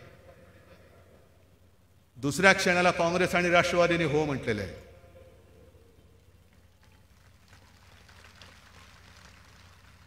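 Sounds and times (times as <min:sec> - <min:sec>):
faint steady hiss: 0:00.0 - 0:03.8, 0:04.4 - 0:10.0
low electrical hum: 0:00.0 - 0:10.0.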